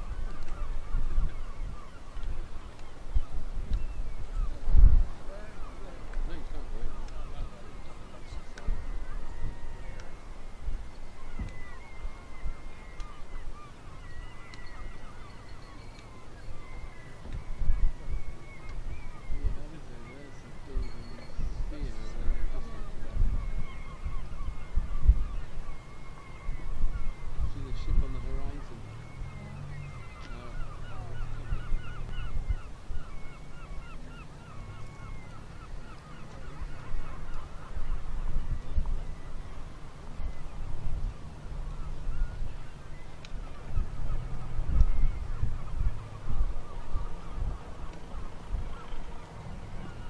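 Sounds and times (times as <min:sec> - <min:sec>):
seabirds calling: 0:00.0 - 0:50.0.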